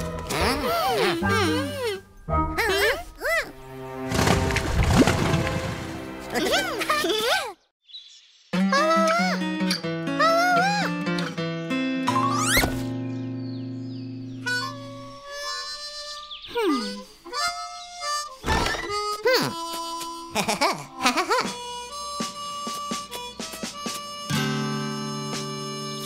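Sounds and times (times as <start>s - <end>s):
harmonica cartoon music: 0.0s - 4.0s, 8.6s - 26.0s
sliding swooping pitch effects: 12.1s - 13.0s.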